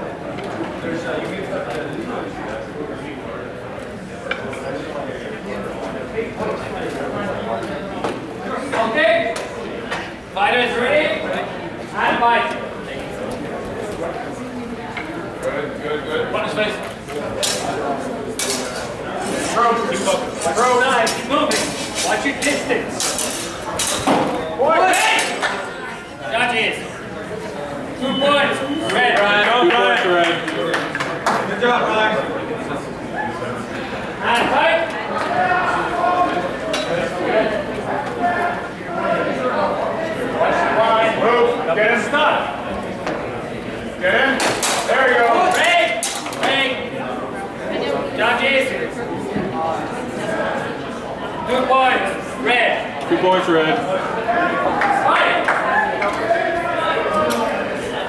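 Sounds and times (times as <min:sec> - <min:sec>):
voices calling out: 0:00.0 - 0:58.0.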